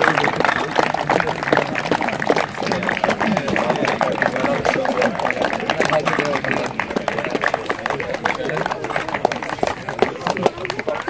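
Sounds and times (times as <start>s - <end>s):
crowd applauding: 0.0s - 11.0s
voices: 0.0s - 11.0s.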